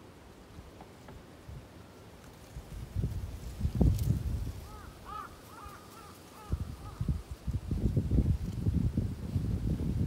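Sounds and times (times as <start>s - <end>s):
crow cawing: 4.6s - 7.1s.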